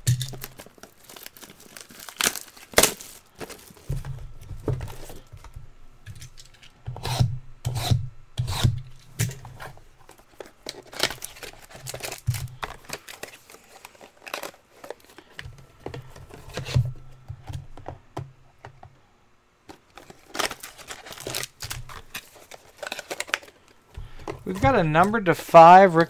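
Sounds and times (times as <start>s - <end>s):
plastic shrink wrap crinkling: 0.0s - 5.3s, 10.0s - 16.9s, 19.7s - 26.0s.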